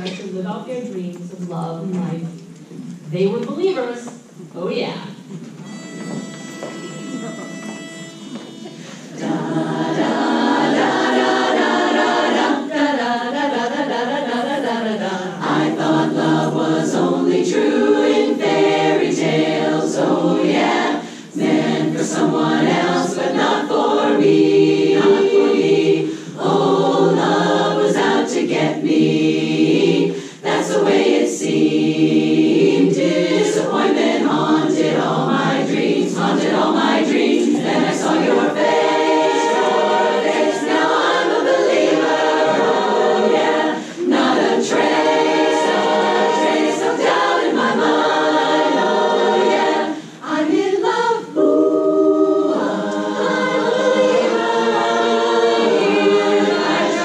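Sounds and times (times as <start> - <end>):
women's chorus singing a cappella: 8.5 - 57.0.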